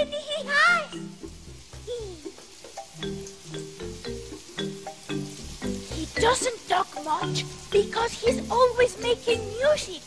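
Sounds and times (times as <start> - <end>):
mallet instrument tune: 0.9 - 9.7.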